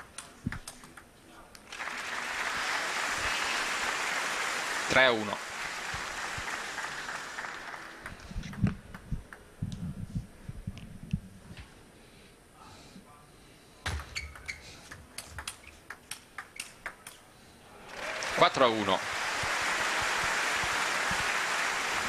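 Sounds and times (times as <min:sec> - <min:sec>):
applause: 0:01.6 - 0:09.1, 0:17.8 - 0:22.0.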